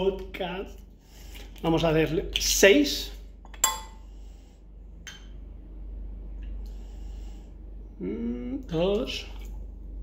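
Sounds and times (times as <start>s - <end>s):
glass bottle clinking on steel: 3.5s - 4.0s.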